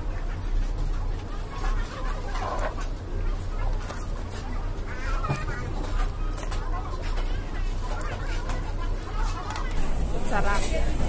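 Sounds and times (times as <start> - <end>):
restaurant din: 0.0 - 11.0.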